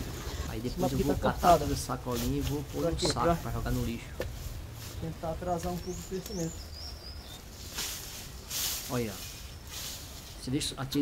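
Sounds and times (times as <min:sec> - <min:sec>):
rustling of cut grass: 0:00.0 - 0:11.0.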